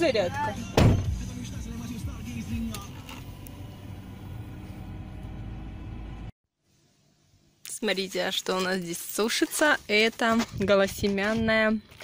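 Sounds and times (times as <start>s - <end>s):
car engine idling: 0.1s - 6.3s.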